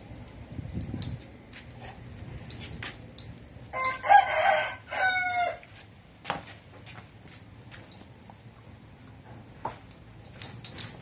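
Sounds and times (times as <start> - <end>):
rooster crowing: 3.7 - 5.7.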